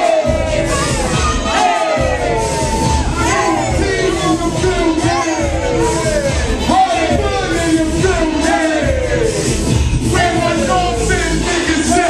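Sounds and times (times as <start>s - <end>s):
crowd shouting and cheering: 0.0s - 12.0s
hip-hop beat with heavy bass: 0.0s - 12.0s.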